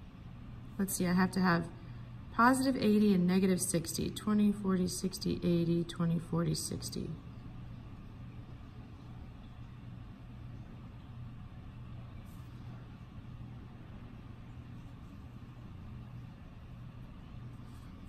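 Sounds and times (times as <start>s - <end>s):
low background hum: 0.0s - 18.0s.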